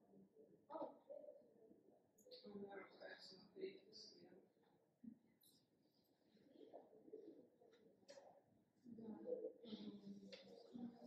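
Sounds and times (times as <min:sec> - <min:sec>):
faint indistinct murmurs: 0:00.0 - 0:11.0.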